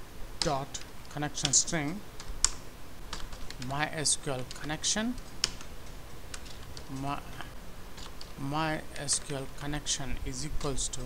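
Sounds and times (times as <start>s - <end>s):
keyboard keystrokes: 8.0s - 8.4s.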